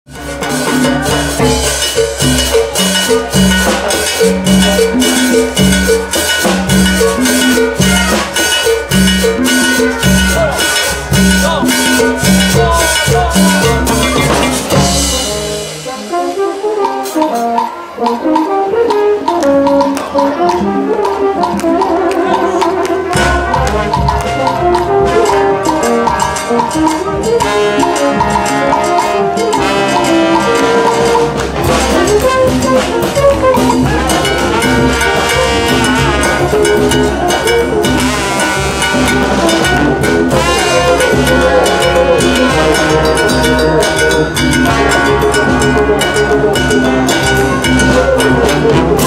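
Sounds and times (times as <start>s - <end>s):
congas and timbales: 0.1s - 49.0s
drum kit: 0.1s - 49.0s
sousaphone bass: 0.1s - 49.0s
trumpets and trombones: 0.1s - 49.0s.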